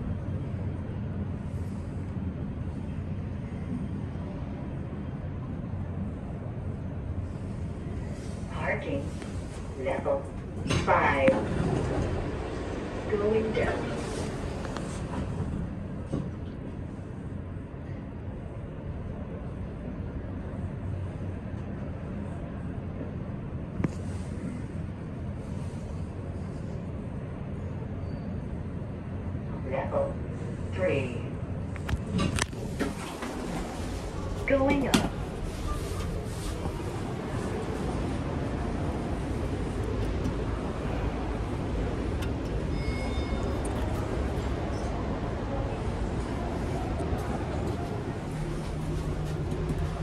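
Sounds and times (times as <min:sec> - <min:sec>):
elevator rumble and hum: 0:00.0 - 0:50.0.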